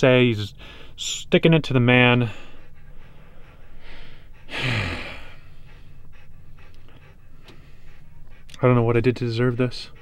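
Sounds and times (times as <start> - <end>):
dog panting: 0.0 - 10.0
heavy sigh: 3.8 - 5.9.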